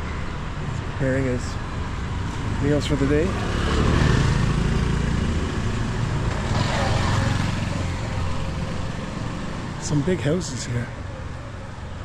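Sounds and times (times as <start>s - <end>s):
scooter engine humming: 3.1s - 9.9s.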